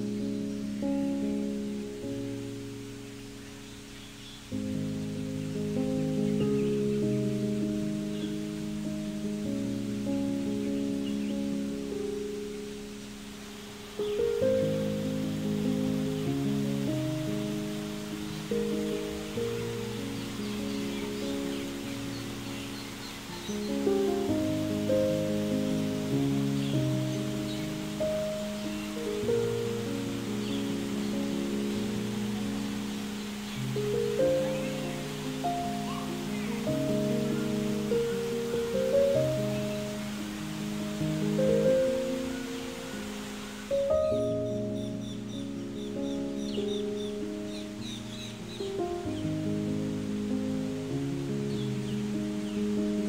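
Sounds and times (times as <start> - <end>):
gentle piano music: 0.0 - 53.0.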